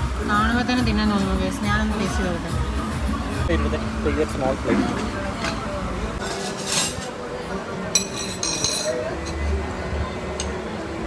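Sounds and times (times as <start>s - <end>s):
cutlery scraping a plate: 6.2s - 7.2s, 8.0s - 9.4s.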